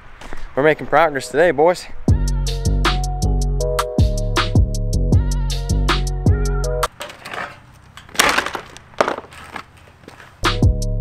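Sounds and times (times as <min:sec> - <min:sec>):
metal frame scraping and knocking: 0:06.9 - 0:09.8.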